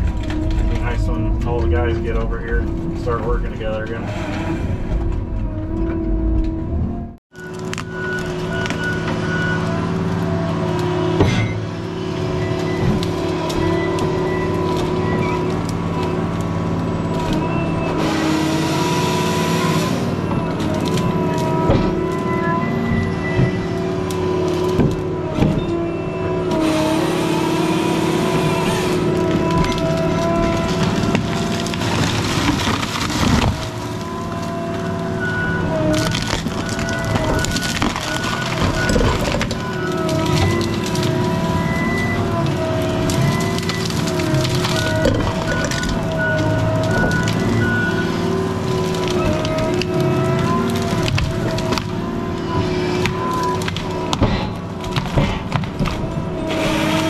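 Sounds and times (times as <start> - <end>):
diesel engine with hydraulic whine: 0.0 - 57.0.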